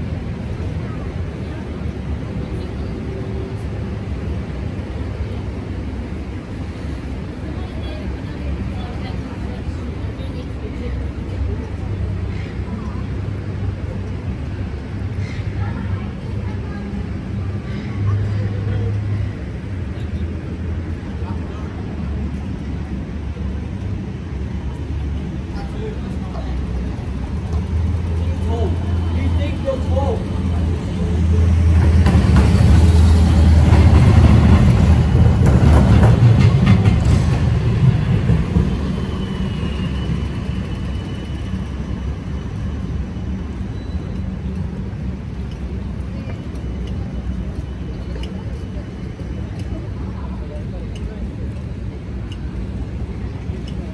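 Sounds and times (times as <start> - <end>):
traffic engine hum: 0.0 - 53.9
people talking: 7.4 - 14.7, 15.3 - 23.8, 24.5 - 33.0, 43.7 - 53.9.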